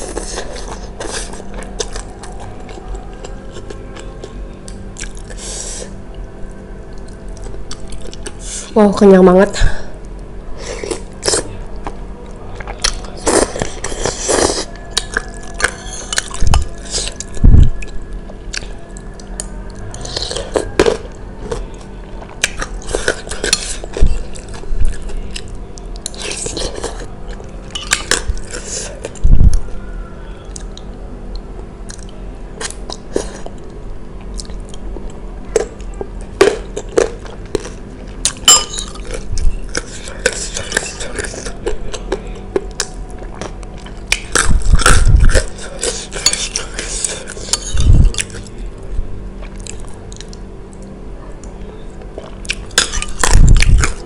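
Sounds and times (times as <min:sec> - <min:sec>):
chewing and slurping noodles: 0:12.6 - 0:29.2.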